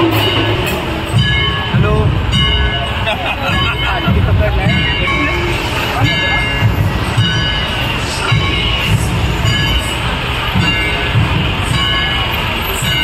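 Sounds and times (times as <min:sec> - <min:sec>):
crowd voices: 0:00.0 - 0:13.0
heavy low rumble: 0:00.0 - 0:13.0
music: 0:00.0 - 0:13.0.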